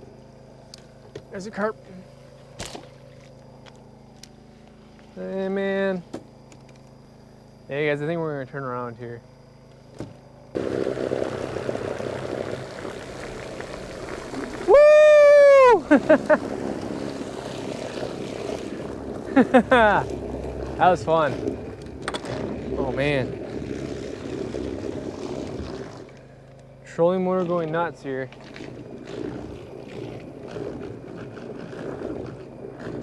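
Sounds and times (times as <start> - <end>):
propeller churning water: 0.0 - 8.4, 10.3 - 33.0
faint motor hum: 0.0 - 33.0.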